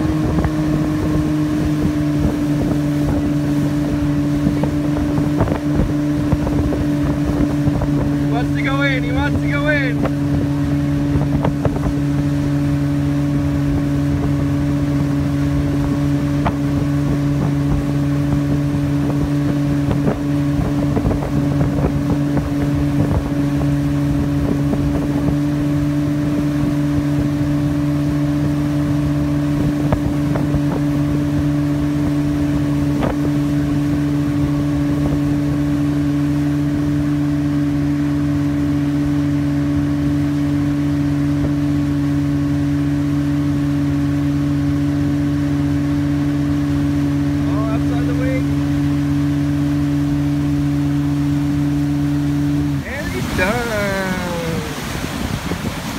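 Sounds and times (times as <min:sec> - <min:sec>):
motorboat engine drone: 0:00.0 - 0:55.9
water noise: 0:00.0 - 0:55.9
wind on microphone: 0:00.0 - 0:55.9.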